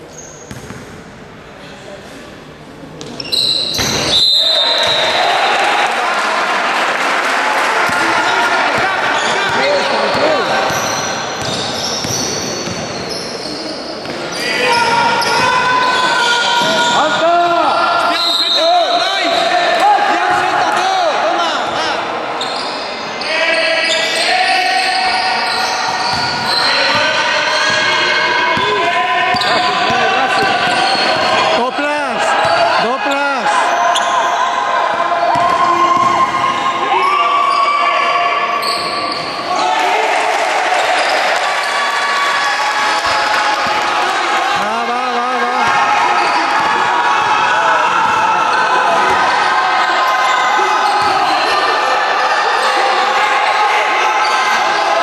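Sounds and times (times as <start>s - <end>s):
basketball bouncing on hall floor: 0.4s - 1.1s, 3.0s - 4.2s, 7.8s - 15.6s, 16.6s - 17.6s, 25.8s - 31.5s, 35.2s - 36.7s
voices calling out echoing: 3.0s - 55.0s.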